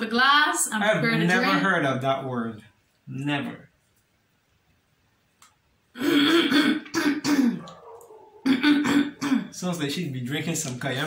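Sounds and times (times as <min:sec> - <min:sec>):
person clearing throat: 0:06.0 - 0:07.8, 0:08.4 - 0:09.6.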